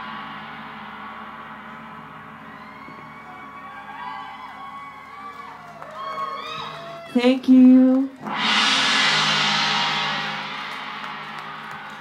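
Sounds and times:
gong ringing: 0:00.0 - 0:04.8, 0:08.2 - 0:12.0
audience whooping and cheering: 0:02.5 - 0:07.2.

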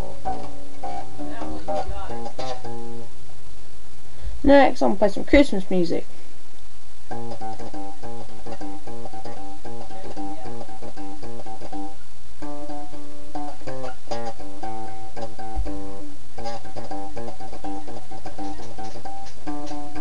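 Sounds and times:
electric bass guitar melody: 0:00.0 - 0:03.2, 0:07.1 - 0:20.0.

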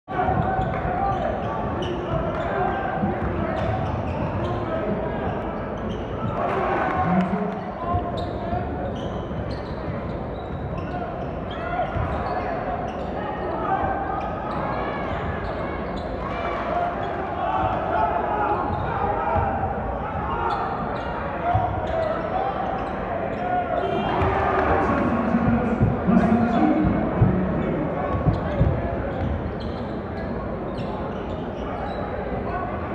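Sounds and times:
spectators talking: 0:00.1 - 0:32.9.

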